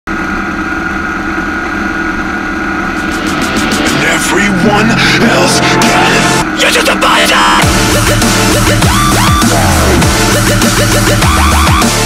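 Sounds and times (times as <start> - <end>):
motorcycle engine running: 0.1 - 6.6, 7.5 - 12.0
music with fast ticking beat: 3.0 - 12.0.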